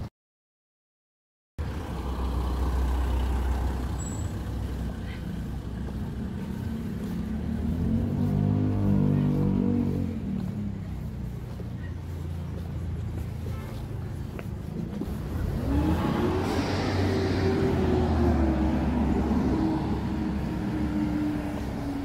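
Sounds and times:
vehicle engine passing: 0:01.6 - 0:22.0.

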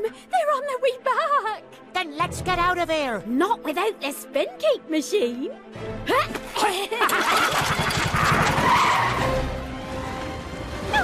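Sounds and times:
background music: 0:00.0 - 0:11.0
cartoon cart rumbling rush: 0:07.0 - 0:09.6.

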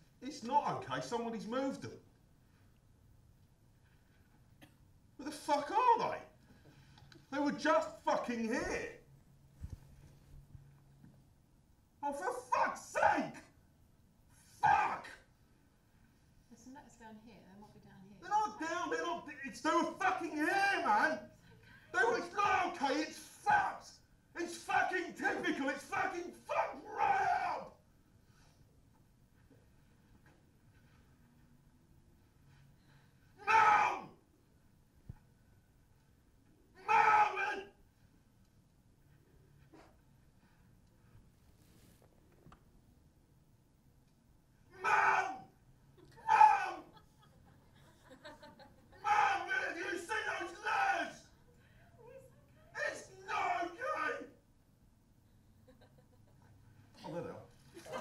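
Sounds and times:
loud wordless yells: 0:05.2 - 0:06.3, 0:12.0 - 0:13.6, 0:14.4 - 0:15.3, 0:18.2 - 0:21.3, 0:21.9 - 0:27.8, 0:33.4 - 0:34.2, 0:36.7 - 0:37.8, 0:44.7 - 0:45.6, 0:46.2 - 0:47.0, 0:49.0 - 0:51.4, 0:52.7 - 0:54.4.

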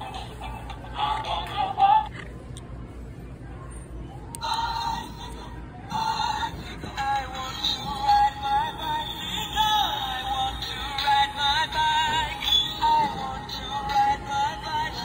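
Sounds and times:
toy playing synthetic sung tune: 0:00.0 - 0:02.1, 0:04.4 - 0:15.0.

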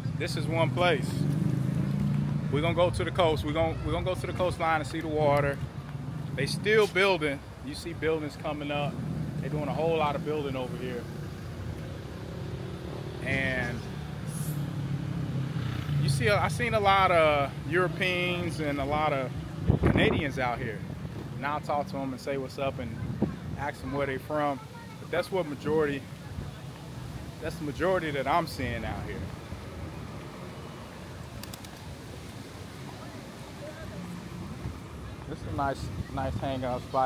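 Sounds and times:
vehicle engine humming: 0:00.0 - 0:37.0
sharp clicks: 0:31.4 - 0:31.8.

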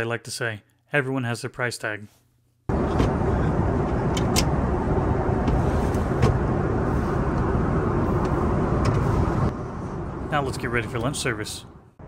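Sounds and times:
airplane cabin engine rumble: 0:02.7 - 0:12.0.

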